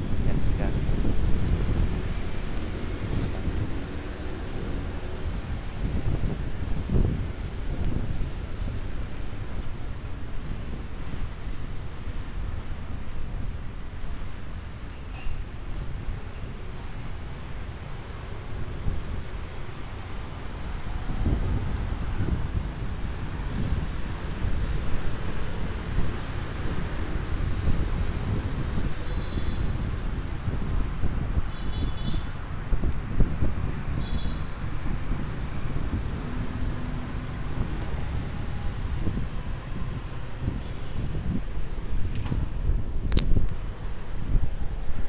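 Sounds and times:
wind buffeting microphone: 0.0s - 14.9s, 15.5s - 45.0s
road traffic: 0.0s - 45.0s.

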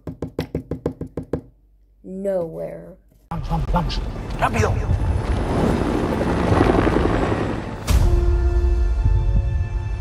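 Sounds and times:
dense rumbling trailer soundtrack: 3.4s - 10.0s.

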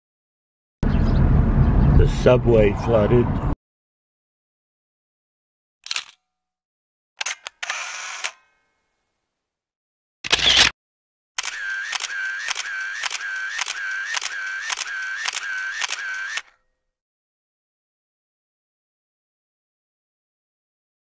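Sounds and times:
sharp mechanical clicks: 5.8s - 6.2s, 7.2s - 8.4s, 10.2s - 10.7s, 11.4s - 16.6s
short whirring tone: 10.2s - 10.7s, 11.4s - 16.6s.

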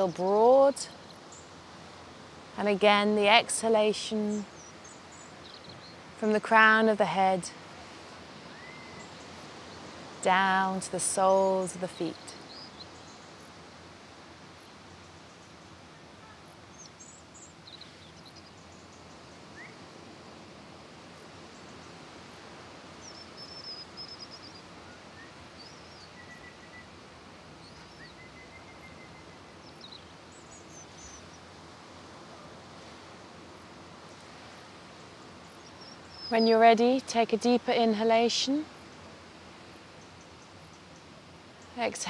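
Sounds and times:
soft wash of seaside noise: 0.0s - 42.0s.

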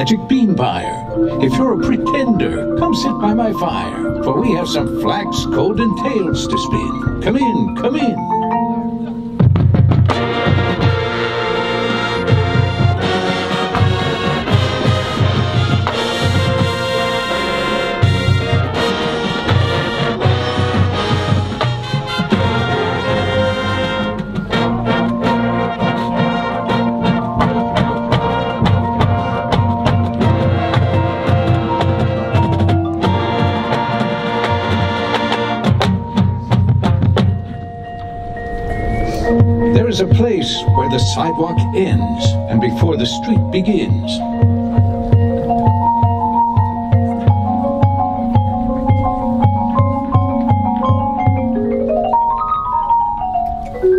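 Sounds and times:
mallet percussion: 0.0s - 53.9s
marching band playing: 0.0s - 53.9s
drum strokes: 8.8s - 53.9s.

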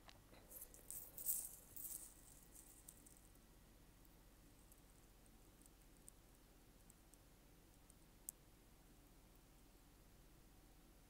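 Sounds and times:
faint high-pitched rustling: 0.1s - 8.4s.

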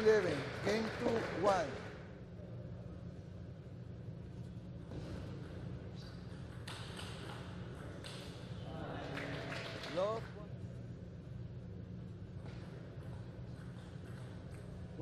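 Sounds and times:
low hall hum: 0.0s - 15.0s.

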